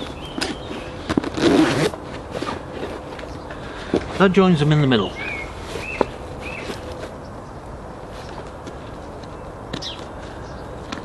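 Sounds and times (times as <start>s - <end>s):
zip being pulled: 0.4s - 3.0s.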